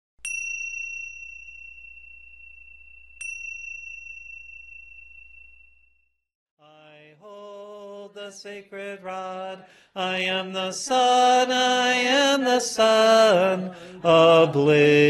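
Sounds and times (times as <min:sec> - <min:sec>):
small bell ringing: 0:00.2 - 0:06.1
chant singing: 0:06.6 - 0:15.0.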